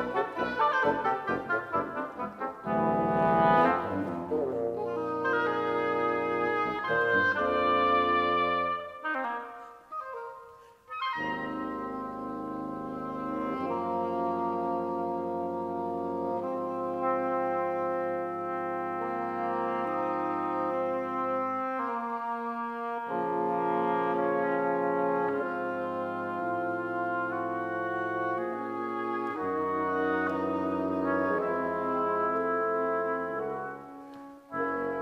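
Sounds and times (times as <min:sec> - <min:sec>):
double-reed quartet playing chords: 0:00.0 - 0:35.0.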